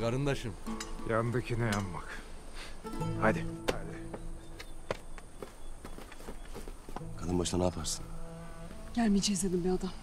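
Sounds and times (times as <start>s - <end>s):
people running over forest ground: 2.9s - 7.6s.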